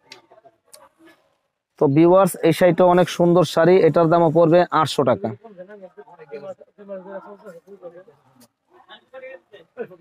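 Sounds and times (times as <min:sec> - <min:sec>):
people talking in background: 0:00.0 - 0:10.0
man talking: 0:01.8 - 0:08.2.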